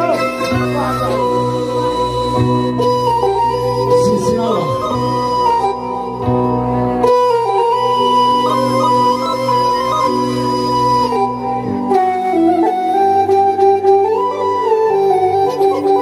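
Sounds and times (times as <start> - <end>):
electronic keyboard melody: 0.0 - 16.0.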